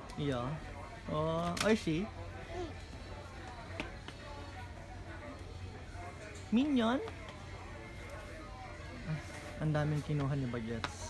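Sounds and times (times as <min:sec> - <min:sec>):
faint voice: 0:02.0 - 0:09.6.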